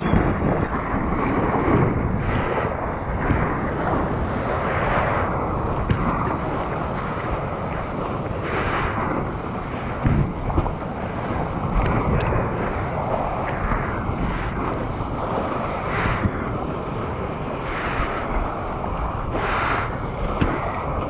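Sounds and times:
water rushing and splashing: 0.0 - 21.0
wind on microphone: 0.0 - 21.0.

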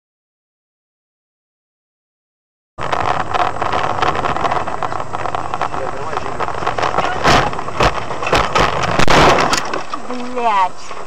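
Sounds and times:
car cabin noise driving on snow: 2.8 - 11.0.

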